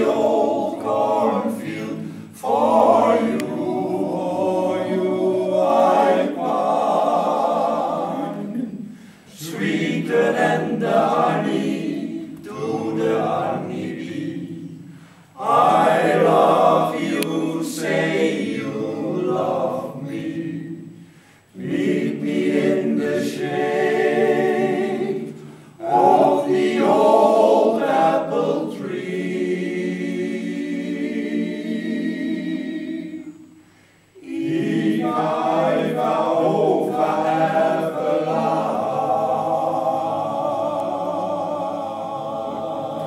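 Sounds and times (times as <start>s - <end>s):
men's choir singing: 0.0s - 33.6s, 34.2s - 43.0s.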